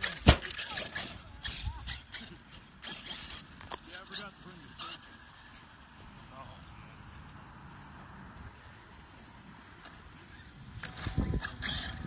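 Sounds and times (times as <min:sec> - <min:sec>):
distant voices talking: 0:00.0 - 0:07.9.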